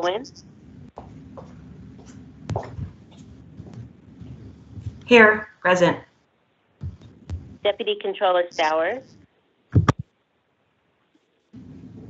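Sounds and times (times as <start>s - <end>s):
phone line rumble and hiss: 0.0s - 6.0s, 6.8s - 10.0s, 11.6s - 12.0s.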